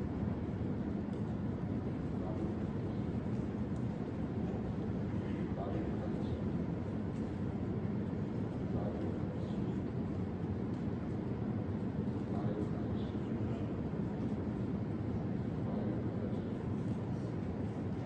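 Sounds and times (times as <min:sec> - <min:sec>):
low room tone rumble: 0:00.0 - 0:18.0.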